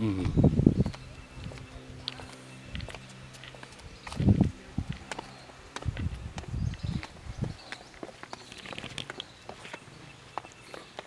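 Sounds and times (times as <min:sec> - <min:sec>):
footsteps on stone path: 0:00.1 - 0:11.0.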